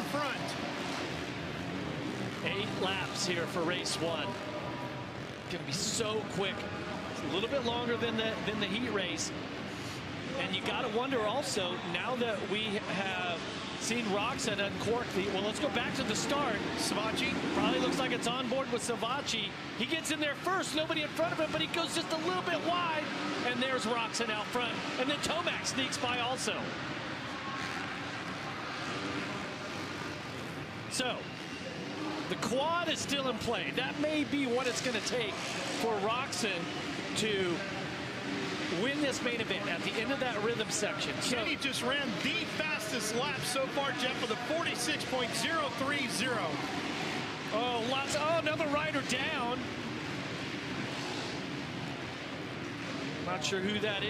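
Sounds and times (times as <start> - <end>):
motorcycle engines running hard: 0.0 - 54.0.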